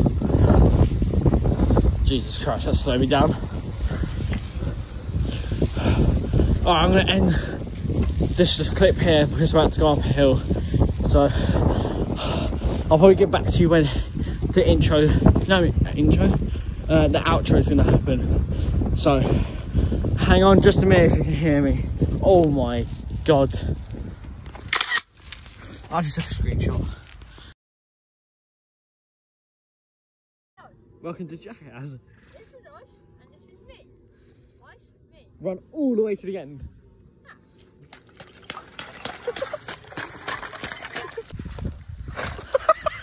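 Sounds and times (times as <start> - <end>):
wind buffeting microphone: 0.0 - 24.7, 25.4 - 27.5, 37.8 - 43.0.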